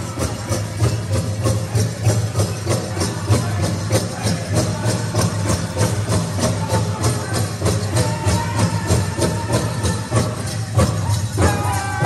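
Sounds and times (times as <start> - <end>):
bells jingling: 0.0 - 12.0.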